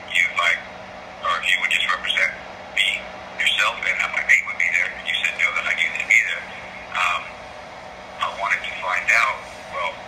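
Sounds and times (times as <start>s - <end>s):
low steady hum: 0.0s - 10.0s
speech over telephone: 1.2s - 7.3s, 8.2s - 10.0s.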